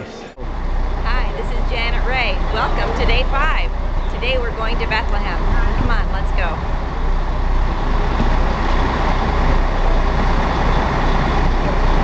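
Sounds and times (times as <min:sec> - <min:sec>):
coach engine idling: 0:00.0 - 0:12.0.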